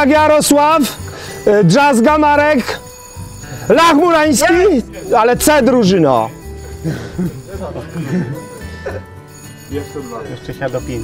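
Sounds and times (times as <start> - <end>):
people talking: 0.0 - 2.8, 3.6 - 6.3, 7.2 - 8.4, 9.7 - 11.0
background music: 0.0 - 11.0.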